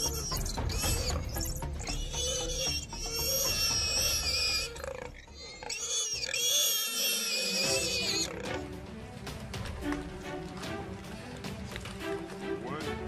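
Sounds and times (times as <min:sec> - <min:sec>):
shrill animal squealing: 0:00.0 - 0:08.6.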